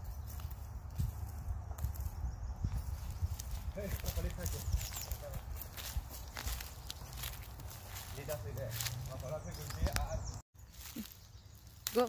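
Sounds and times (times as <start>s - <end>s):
footsteps on dry leaves: 0.0s - 12.0s.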